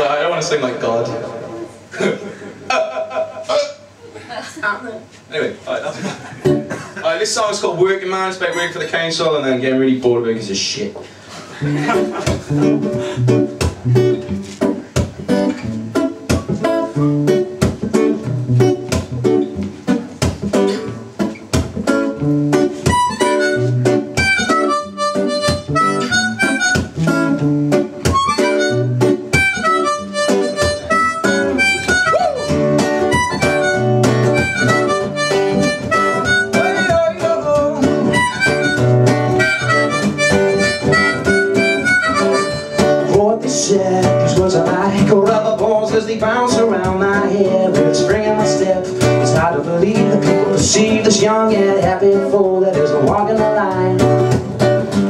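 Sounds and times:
acoustic guitar strumming: 0:06.2 - 0:07.4, 0:11.2 - 0:55.0
harmonica melody: 0:22.1 - 0:43.2.

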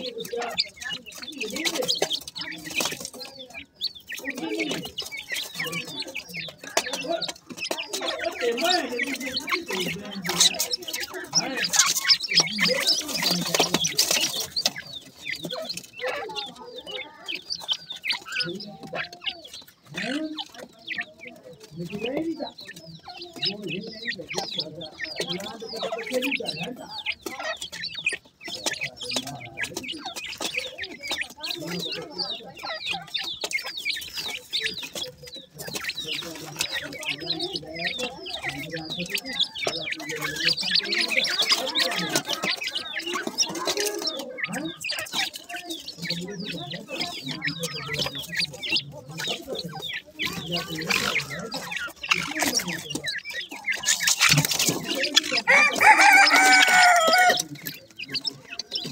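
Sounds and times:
bird chicks chirping and clucking: 0:00.0 - 0:58.9.

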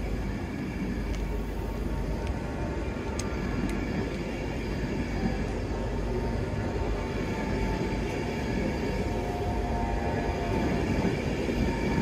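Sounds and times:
train rumbling past: 0:00.0 - 0:12.0.

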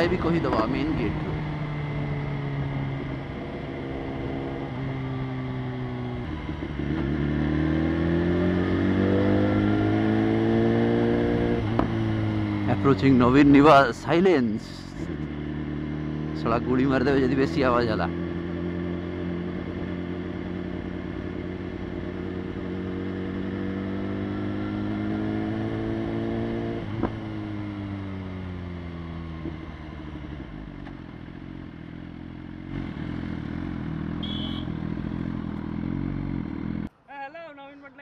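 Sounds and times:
motorcycle engine revving: 0:00.0 - 0:36.9.

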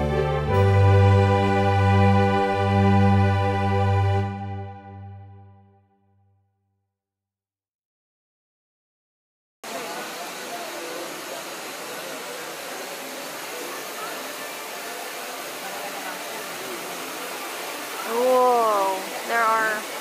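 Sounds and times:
faint voices: 0:09.7 - 0:20.0
rushing ride ambience: 0:09.7 - 0:20.0.

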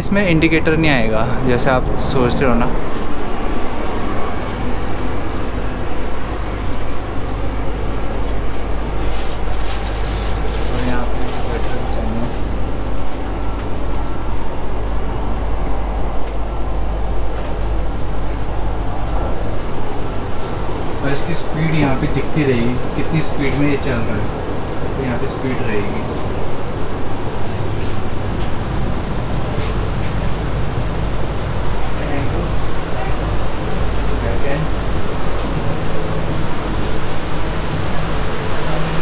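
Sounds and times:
train carriage rumble and hiss: 0:00.0 - 0:39.0.

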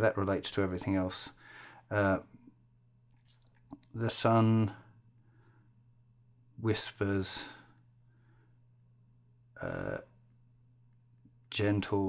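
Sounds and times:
man reading out slowly: 0:00.0 - 0:02.5, 0:03.8 - 0:05.0, 0:06.6 - 0:07.8, 0:09.5 - 0:10.2, 0:11.4 - 0:12.0
faint low hum: 0:00.0 - 0:12.0.

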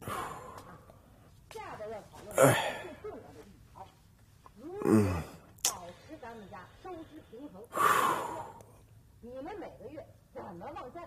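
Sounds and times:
man groaning: 0:02.4 - 0:02.8, 0:04.8 - 0:05.4.

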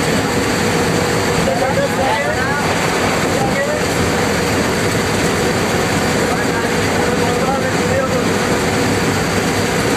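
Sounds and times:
vehicle engine and road noise: 0:00.0 - 0:09.9
indistinct talking: 0:01.3 - 0:05.1.

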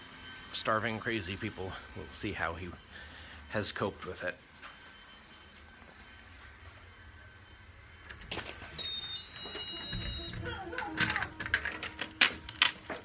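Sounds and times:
knocks on door: 0:09.8 - 0:10.8.

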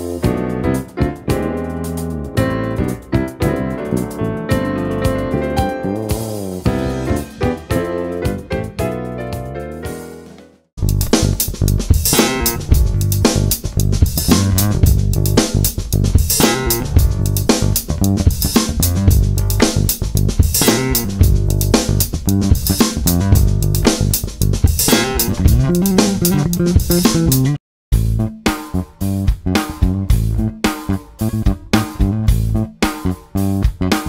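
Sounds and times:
electric bass played fingerstyle: 0:00.0 - 0:09.7, 0:10.8 - 0:34.0
piano piece: 0:00.0 - 0:10.6, 0:24.8 - 0:27.6
drums: 0:00.0 - 0:34.0.

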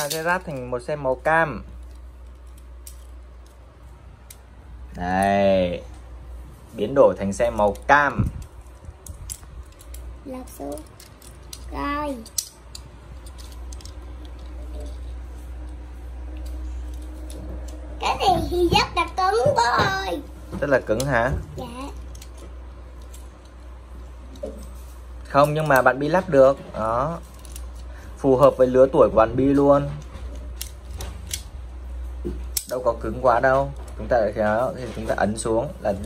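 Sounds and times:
low steady hum: 0:00.0 - 0:36.0
plastic toy parts clicking: 0:01.8 - 0:03.6, 0:07.5 - 0:15.0, 0:22.0 - 0:23.7, 0:27.3 - 0:27.9, 0:30.3 - 0:31.5.

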